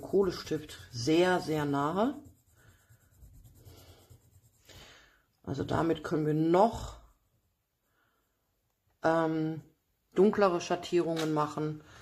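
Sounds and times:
pencil shading on paper: 0:00.0 - 0:05.0.

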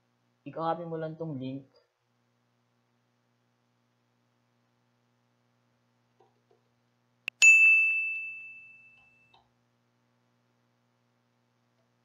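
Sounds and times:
bright bell ding: 0:07.4 - 0:09.3.

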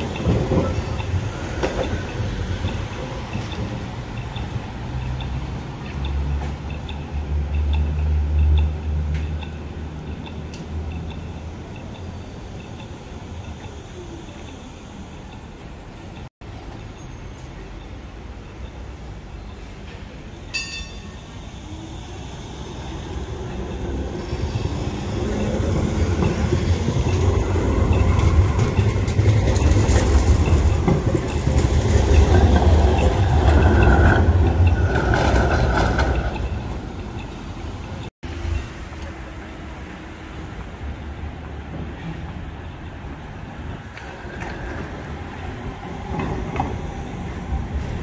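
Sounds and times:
tram running rumble: 0:00.0 - 0:48.0
wheels squealing on rails: 0:00.0 - 0:48.0.

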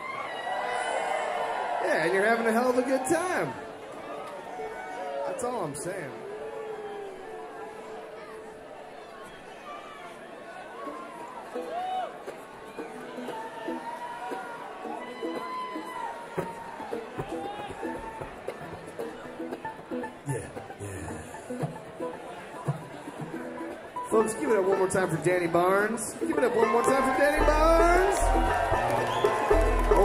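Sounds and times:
audience chatter and shouts: 0:00.0 - 0:30.0
plucked string notes: 0:11.6 - 0:30.0.

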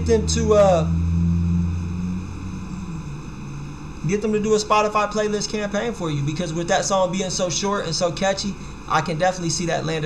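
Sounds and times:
man humming in thought: 0:00.8 - 0:04.0.

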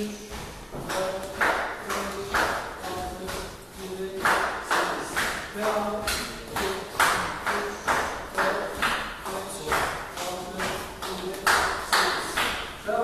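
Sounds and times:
feet stamping on tiled floor: 0:00.3 - 0:12.7.

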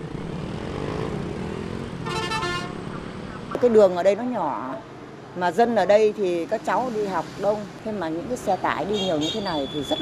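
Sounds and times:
motorbike and truck engines: 0:00.0 - 0:10.0.

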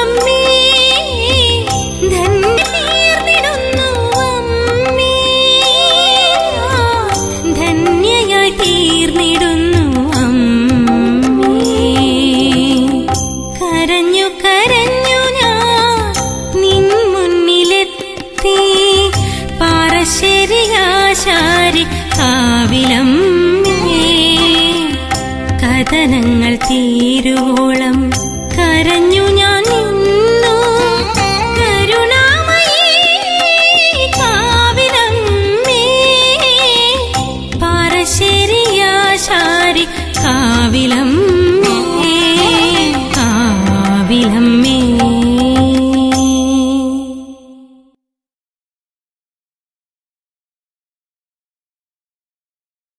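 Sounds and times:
instrumental accompaniment: 0:00.0 - 0:47.6
devotional song held note: 0:05.2 - 0:09.2, 0:39.9 - 0:45.7
person singing ornamented phrases: 0:40.3 - 0:48.0.

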